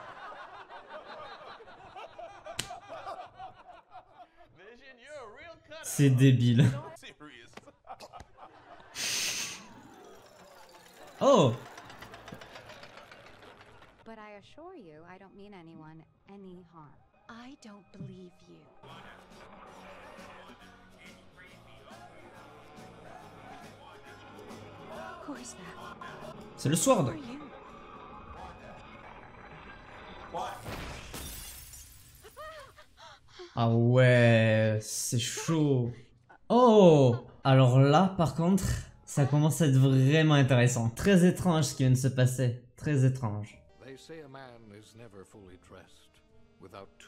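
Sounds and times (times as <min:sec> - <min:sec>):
glass shattering: 0:30.6 - 0:32.4.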